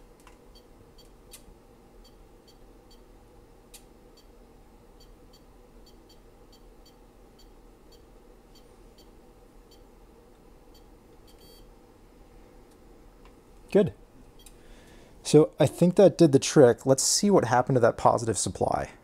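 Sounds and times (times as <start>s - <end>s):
short electronic beeps: 11.3s - 11.6s.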